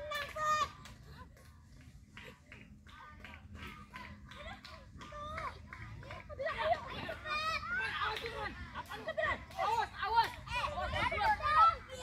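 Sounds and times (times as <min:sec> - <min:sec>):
children calling and chattering: 0:02.2 - 0:12.0.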